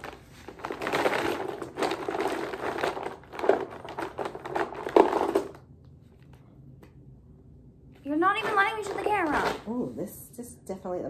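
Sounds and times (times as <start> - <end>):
plastic tubes rattling: 0.0 - 5.6.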